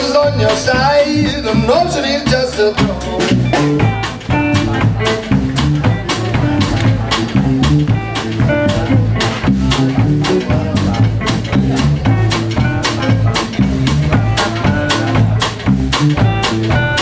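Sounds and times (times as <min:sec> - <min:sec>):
blues band playing: 0:00.0 - 0:17.0
drum hits: 0:00.0 - 0:17.0.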